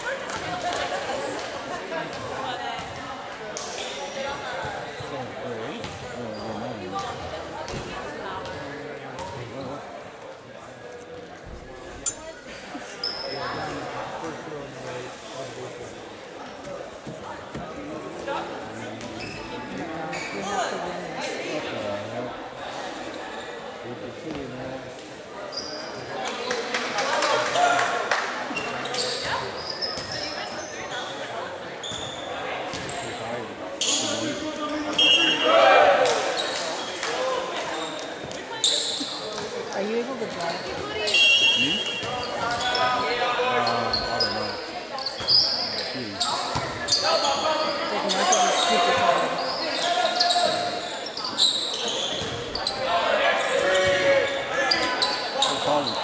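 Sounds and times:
voices echoing in gymnasium: 0.0s - 56.0s
sneakers squeaking on floor: 2.1s - 9.9s, 13.0s - 13.9s, 19.0s - 20.8s, 25.4s - 26.6s, 28.5s - 33.2s, 33.8s - 35.6s, 36.2s - 37.0s, 37.6s - 56.0s.

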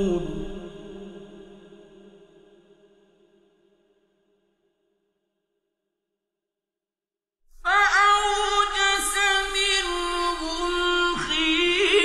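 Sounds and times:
man reciting melodically: 0.0s - 1.2s, 7.8s - 12.0s.

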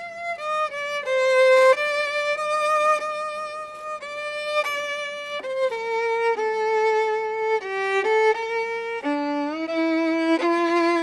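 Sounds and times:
solo violin slow melody: 0.0s - 11.0s.

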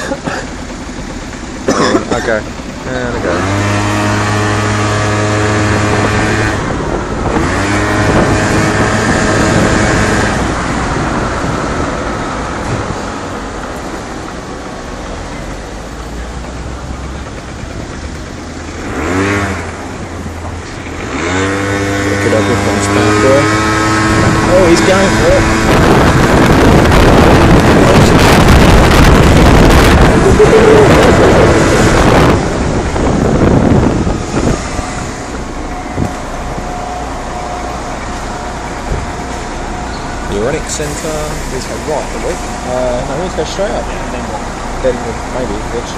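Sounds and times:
moped engine: 0.0s - 45.9s
loud rushing noise: 17.7s - 45.9s.

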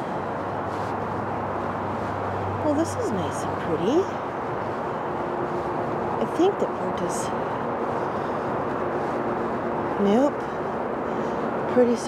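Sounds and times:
city background hum: 0.0s - 12.0s.

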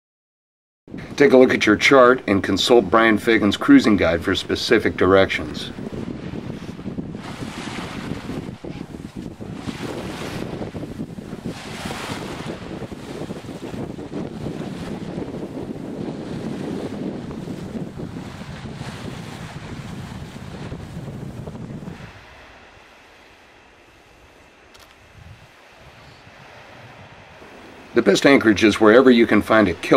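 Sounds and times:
waves washing: 0.9s - 29.9s
wind buffeting microphone: 0.9s - 29.9s.

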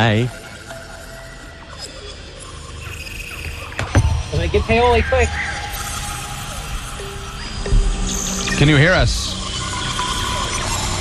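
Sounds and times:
sustained electronic tones: 0.0s - 11.0s.

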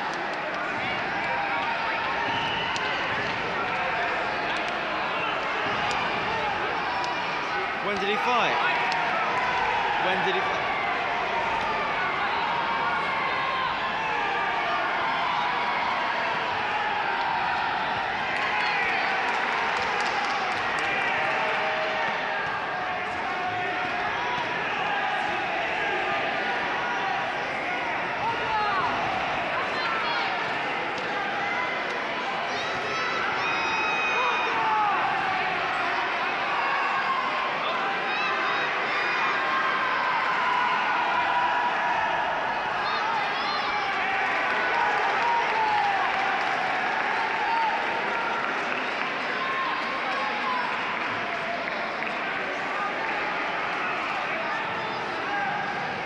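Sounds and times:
high shouts: 0.0s - 50.9s
crowd hubbub: 0.0s - 56.0s.

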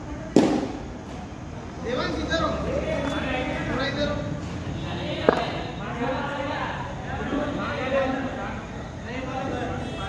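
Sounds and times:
cricket ball impact crack: 0.3s - 1.2s, 5.2s - 5.7s.

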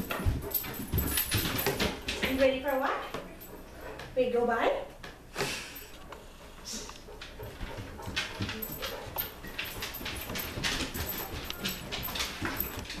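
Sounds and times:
dog claws clicking on wood floor: 0.0s - 4.2s, 6.8s - 13.0s.

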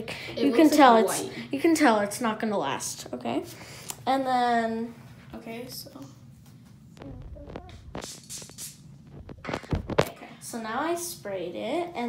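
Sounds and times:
spray bottle hissing: 8.0s - 9.0s.

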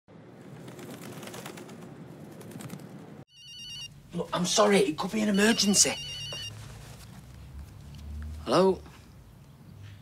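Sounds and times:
phone ringing with warbling trill: 3.3s - 4.0s, 5.0s - 6.5s.

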